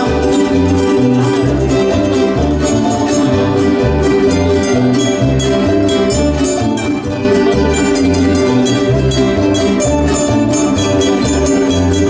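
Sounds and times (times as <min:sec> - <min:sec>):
bass line: 0:00.0 - 0:12.0
plucked-string ensemble playing: 0:00.0 - 0:12.0.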